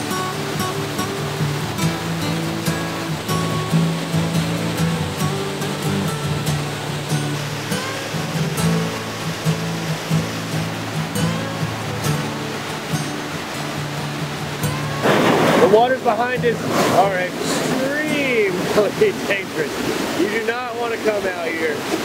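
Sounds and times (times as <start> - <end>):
rushing creek and waterfall: 0.0 - 22.0.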